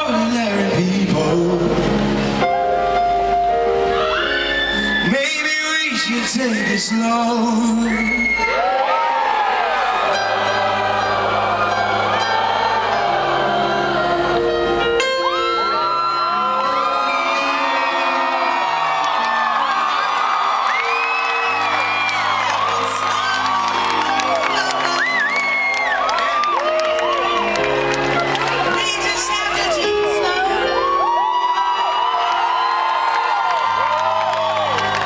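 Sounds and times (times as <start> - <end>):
grand piano playing chords: 0.0 - 6.4, 9.6 - 35.0
crowd cheering and whooping: 2.8 - 35.0.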